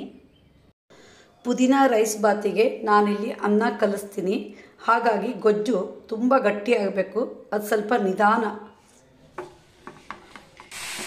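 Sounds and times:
paste sizzling in a pan: 10.6 - 11.0.

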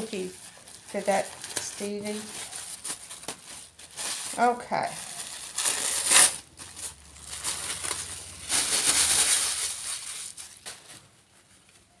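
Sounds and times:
tissue paper rustling: 0.0 - 12.0.

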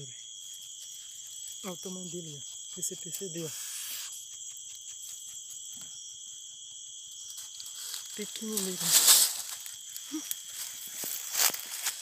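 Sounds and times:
night insects singing: 0.0 - 12.0.

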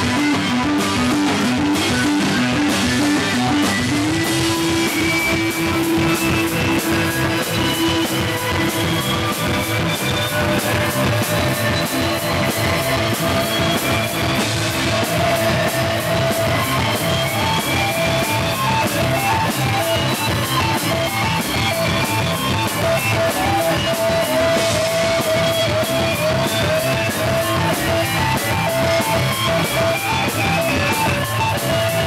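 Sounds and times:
electric guitar riff: 0.0 - 32.0.

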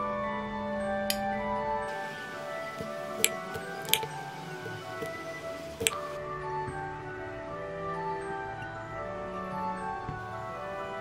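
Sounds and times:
instrumental background music: 0.0 - 11.0
knife clicking on cutting board: 2.8 - 6.1.

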